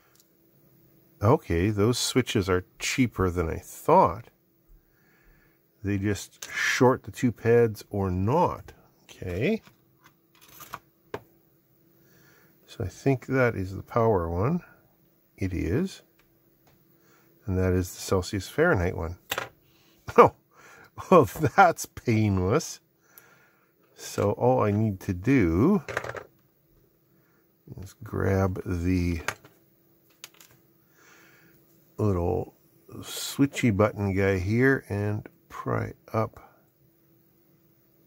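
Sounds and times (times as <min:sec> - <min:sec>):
man speaking: 0:01.2 - 0:04.3, 0:05.8 - 0:09.7, 0:12.7 - 0:14.7, 0:15.4 - 0:16.1, 0:17.4 - 0:19.2, 0:20.1 - 0:20.4, 0:21.0 - 0:22.8, 0:24.0 - 0:25.9, 0:27.7 - 0:29.4, 0:32.0 - 0:36.5.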